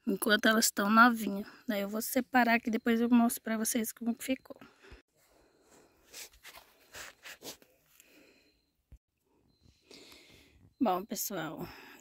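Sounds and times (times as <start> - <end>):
rustling of plastic plant pots: 6.0 - 8.0.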